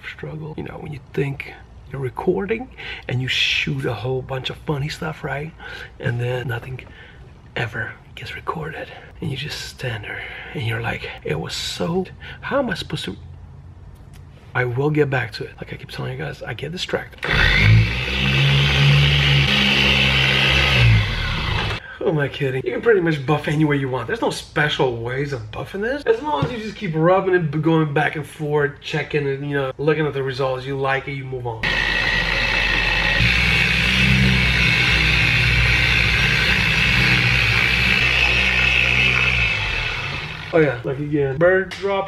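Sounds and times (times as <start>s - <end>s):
electric polisher running: 17.2s - 21.8s, 31.6s - 40.6s.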